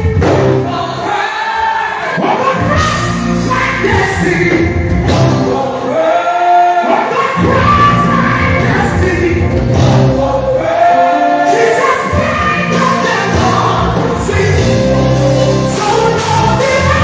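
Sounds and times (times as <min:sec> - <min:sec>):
choir singing worship song: 0:00.4 - 0:17.0
instrumental backing music: 0:02.5 - 0:05.8, 0:07.4 - 0:17.0.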